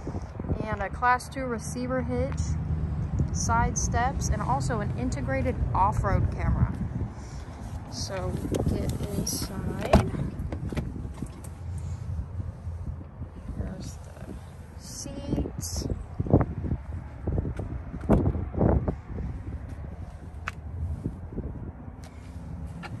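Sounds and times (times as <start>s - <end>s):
wind rumble: 0.0s - 23.0s.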